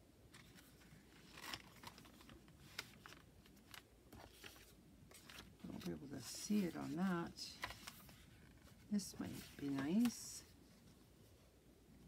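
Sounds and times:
paper pages rustling: 0.3 - 11.1.

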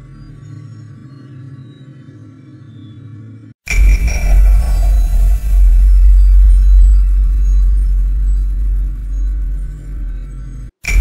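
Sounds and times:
deep bass rumble: 3.7 - 11.0.

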